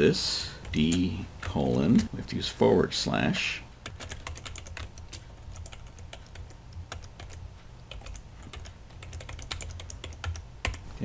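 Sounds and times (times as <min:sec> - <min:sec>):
low steady hum: 0:00.0 - 0:11.0
typing on computer keyboard: 0:03.8 - 0:10.8.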